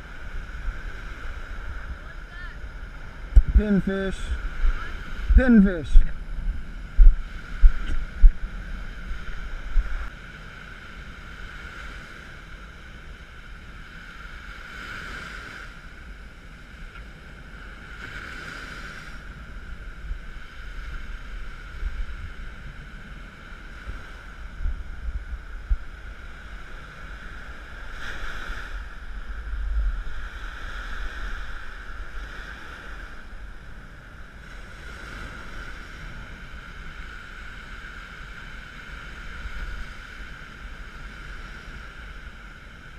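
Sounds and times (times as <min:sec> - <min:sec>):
surf breaking on beach: 0:00.0 - 0:16.2, 0:17.2 - 0:42.9
wind on microphone: 0:00.0 - 0:42.9.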